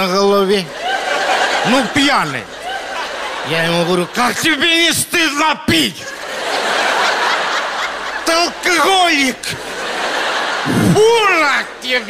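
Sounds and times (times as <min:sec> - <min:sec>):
audience laughing: 0:00.4 - 0:05.2, 0:05.9 - 0:12.0.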